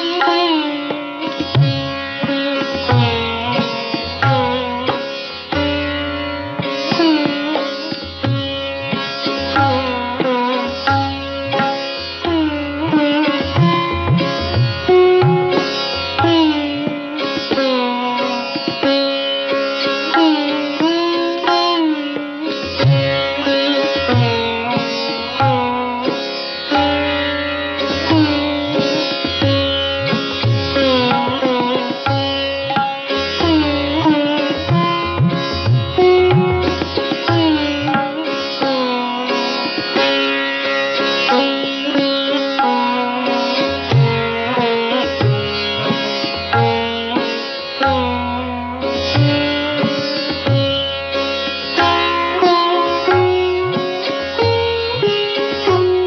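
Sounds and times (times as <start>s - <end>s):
solo sitar playing: 0.0s - 56.0s.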